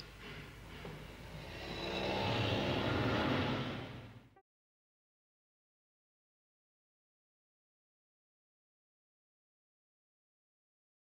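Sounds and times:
engine-like roar: 1.4 - 4.2.

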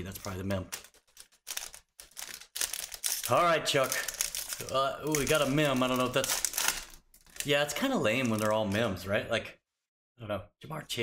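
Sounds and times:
foil wrapper crinkling and tearing: 0.0 - 8.9.

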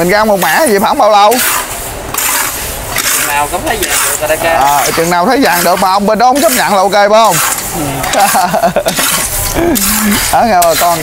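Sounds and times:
rice hissing and scraping in pan: 0.0 - 11.0
person speaking: 3.1 - 8.2, 9.4 - 11.0
person laughing: 7.7 - 10.3.

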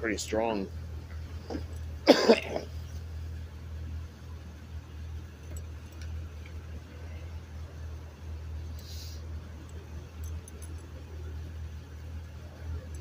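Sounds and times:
bus engine idling rumble: 0.0 - 13.0
person coughing: 2.0 - 2.7.

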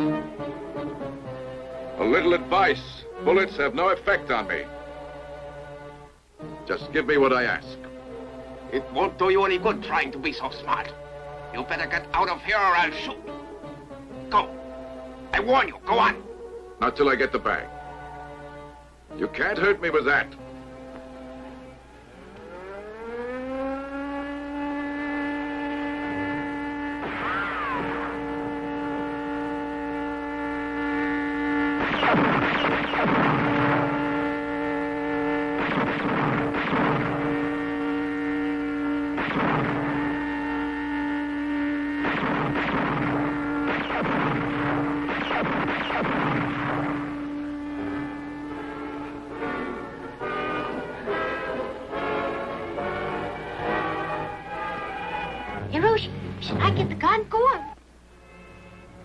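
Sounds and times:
organ-like musical drone: 0.0 - 59.0
pistol shots: 31.8 - 34.1, 35.6 - 37.4, 39.2 - 40.2, 42.0 - 47.3.

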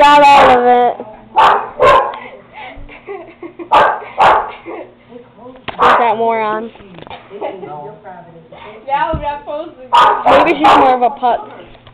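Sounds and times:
dog barking: 0.3 - 0.7, 1.4 - 2.2, 3.7 - 4.5, 5.8 - 6.2, 9.9 - 11.0.

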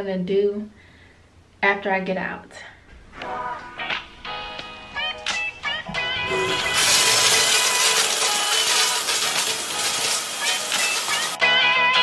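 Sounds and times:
background music: 3.1 - 12.0
shower spray running: 5.9 - 11.4.

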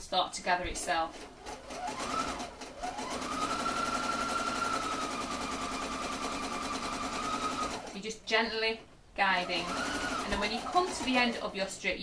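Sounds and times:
sewing machine stitching: 0.9 - 8.0, 9.4 - 11.4.

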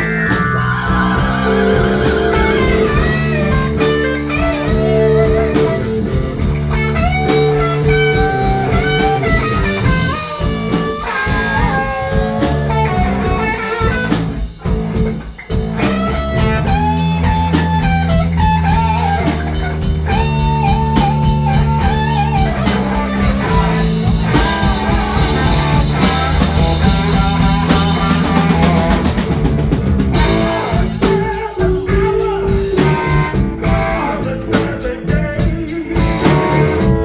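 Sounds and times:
drums: 0.0 - 37.0
electric guitar lead lines: 0.0 - 37.0.

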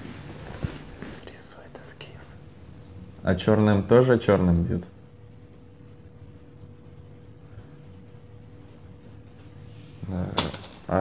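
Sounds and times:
person whispering: 1.2 - 2.4.

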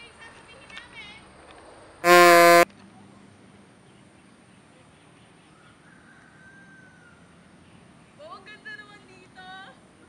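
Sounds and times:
reedy horn-like beep: 2.0 - 2.7.

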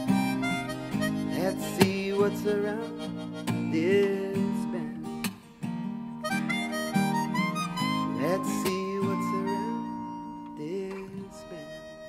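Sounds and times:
harmonica solo: 0.0 - 5.1, 6.1 - 12.0
strummed acoustic guitar: 0.0 - 12.0.

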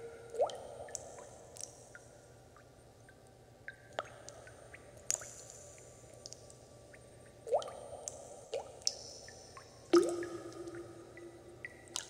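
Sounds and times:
water drops plinking: 10.0 - 12.0.

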